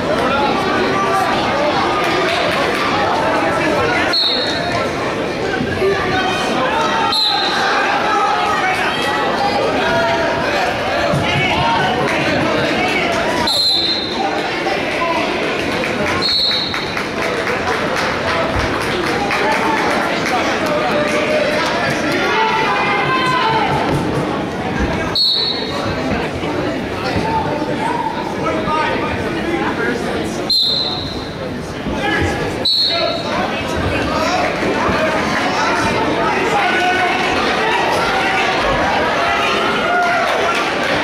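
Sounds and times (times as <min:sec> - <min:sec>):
spectators shouting and talking: 0:00.0 - 0:41.0
referee's whistle blast: 0:04.1 - 0:04.6, 0:13.5 - 0:14.2, 0:25.1 - 0:25.8, 0:30.5 - 0:31.3, 0:32.6 - 0:33.2.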